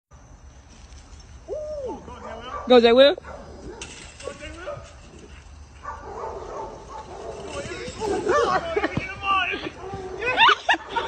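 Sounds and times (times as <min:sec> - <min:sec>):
dog howl-bark: 0:05.8 - 0:07.3.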